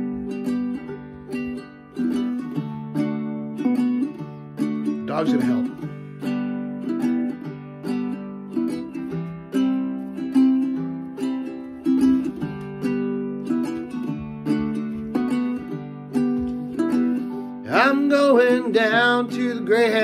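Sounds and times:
nylon-string guitar and ukulele: 0:00.0 - 0:20.0.

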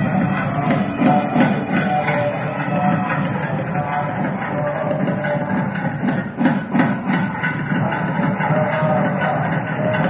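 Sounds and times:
crowd din: 0:00.0 - 0:10.0
festive ceremony music: 0:00.0 - 0:10.0
regular drum strokes: 0:00.0 - 0:10.0.

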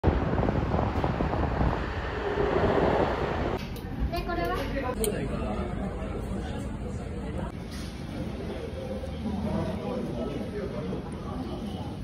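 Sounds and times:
wind buffeting microphone: 0:00.0 - 0:04.1.

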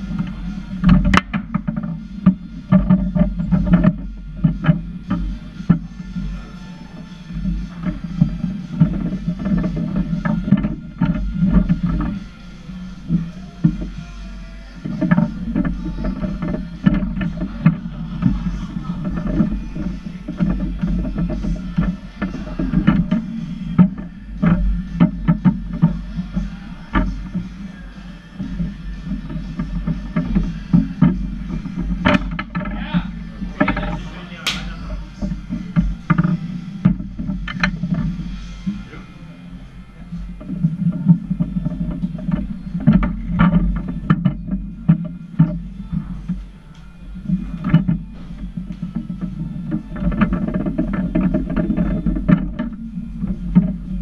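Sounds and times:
background music: 0:00.0 - 0:54.0
foosball ball clicks and knocks: 0:00.1 - 0:06.2
table football ball clacks: 0:33.6 - 0:35.0.

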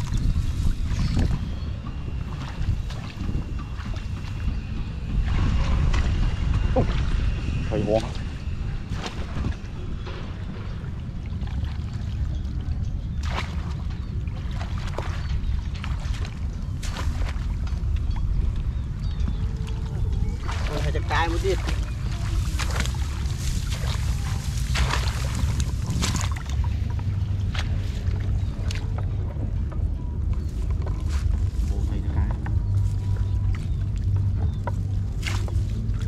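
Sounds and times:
muddy water splashing: 0:00.0 - 0:36.0
steady low rumble: 0:00.0 - 0:36.0.

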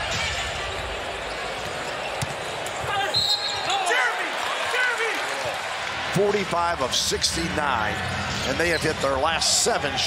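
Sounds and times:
arena crowd noise: 0:00.0 - 0:10.0
basketball bouncing on court: 0:01.6 - 0:02.5.

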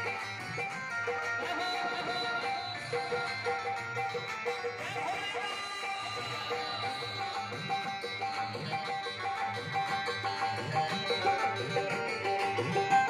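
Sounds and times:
electronic keyboard melody: 0:00.0 - 0:13.0.

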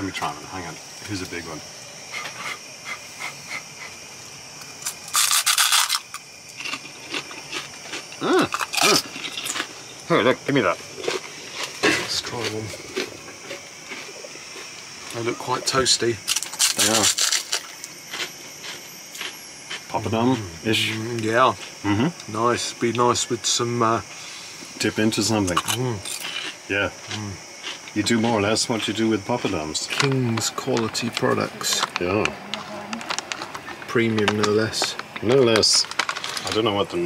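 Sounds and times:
loud dry crunch of snack: 0:04.6 - 0:09.9, 0:10.6 - 0:15.2, 0:16.2 - 0:21.8, 0:25.5 - 0:28.5, 0:29.2 - 0:36.8.

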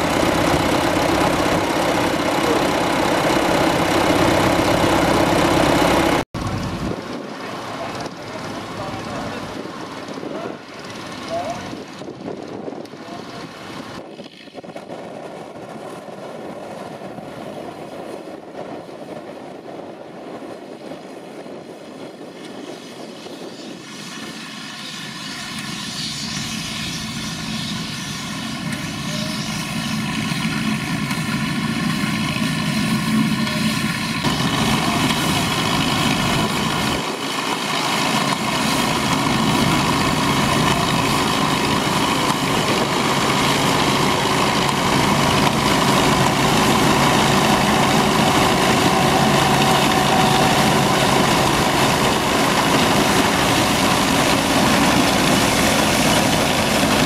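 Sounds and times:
tractor engine running: 0:00.0 - 0:14.2, 0:28.0 - 0:57.0
combine threshing machinery: 0:00.0 - 0:14.8, 0:24.5 - 0:57.0.

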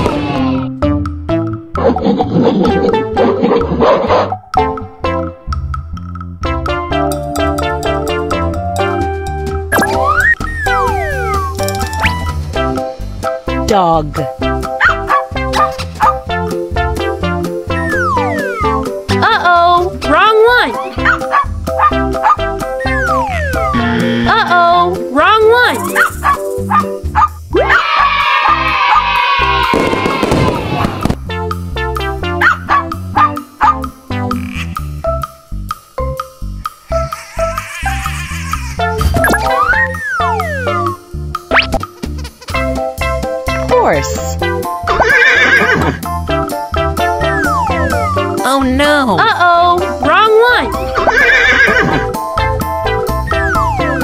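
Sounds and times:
bouncy children's music: 0:00.1 - 0:30.3, 0:31.2 - 0:54.0
dog howling: 0:27.6 - 0:30.9
horse whinnying: 0:44.9 - 0:46.0, 0:51.0 - 0:52.1.

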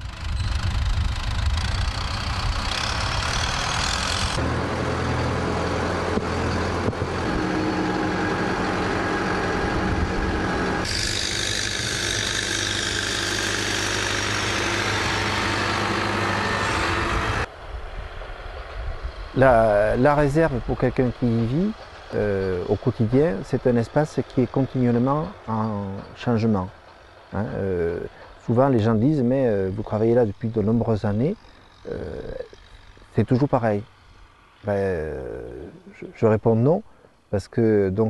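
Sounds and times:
tractor diesel engine running: 0:00.0 - 0:36.1.

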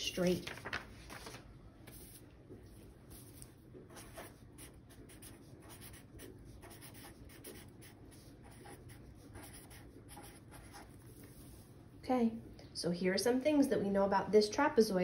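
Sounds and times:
felt-tip marker writing on paper: 0:03.2 - 0:11.0.

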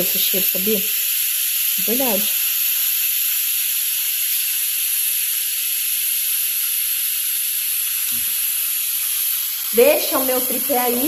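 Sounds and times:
pressure cooker venting steam: 0:00.0 - 0:11.0.

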